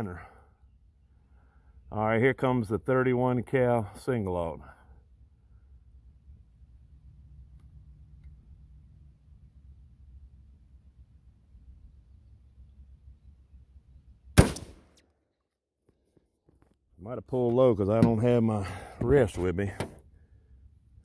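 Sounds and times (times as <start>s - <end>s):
shotgun shot: 14.4s - 15.0s.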